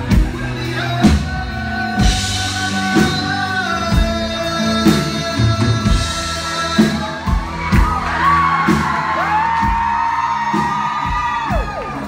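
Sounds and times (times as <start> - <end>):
drums beating: 0.0 - 12.0
rock band playing: 0.0 - 12.0.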